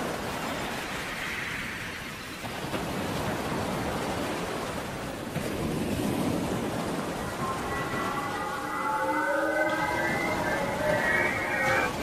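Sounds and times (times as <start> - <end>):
rush of noise: 5.8 - 12.0
sustained high synthesized tones: 6.4 - 12.0.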